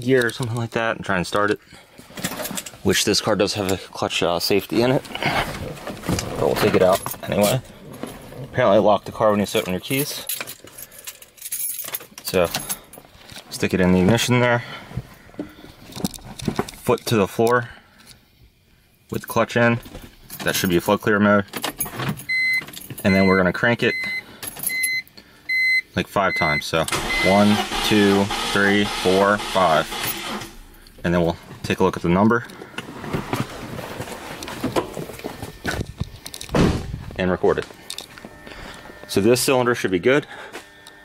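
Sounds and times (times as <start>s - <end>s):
car keys jangling: 9.5s - 13.5s, 21.4s - 23.2s
rustling: 32.6s - 38.9s.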